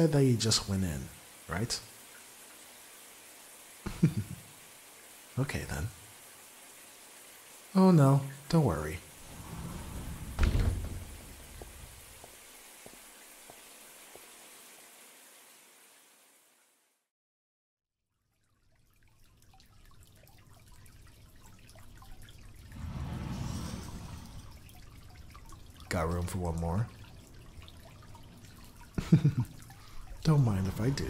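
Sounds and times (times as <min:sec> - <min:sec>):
water drips: 0:00.0 - 0:15.0, 0:18.2 - 0:31.0
shower water running: 0:00.0 - 0:16.6, 0:19.1 - 0:31.0.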